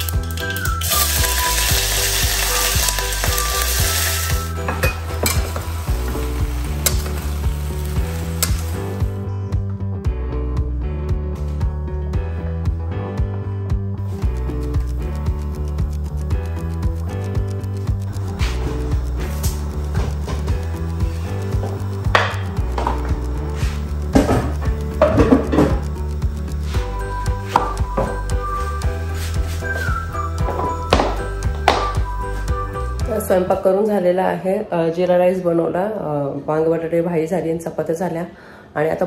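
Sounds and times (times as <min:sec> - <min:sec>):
vegetables sizzling in oil: 0:00.0 - 0:09.2
background music: 0:00.0 - 0:37.9
kitchen utensils clattering: 0:04.6 - 0:05.6
metal turner clinking on pot: 0:04.7 - 0:05.6.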